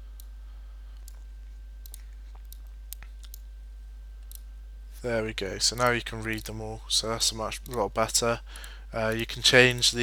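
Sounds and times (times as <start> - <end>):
steady low hum: 0.0 - 10.0
computer mouse clicking: 1.8 - 3.4, 5.8 - 6.6, 8.6 - 10.0.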